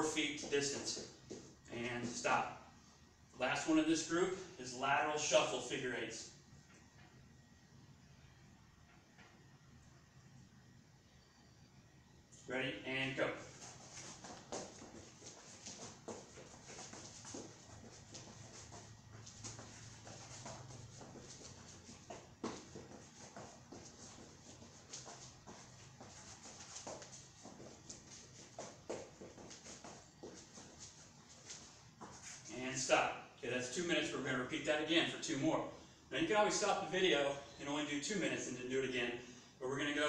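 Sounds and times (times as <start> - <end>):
footsteps shuffling on foam mat: 13.2 - 32.6.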